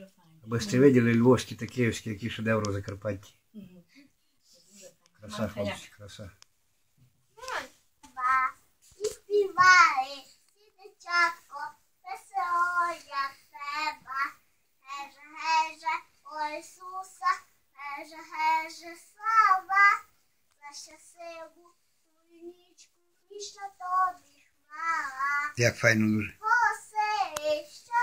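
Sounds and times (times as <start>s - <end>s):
girl singing: 7.4s - 25.6s, 26.4s - 28.0s.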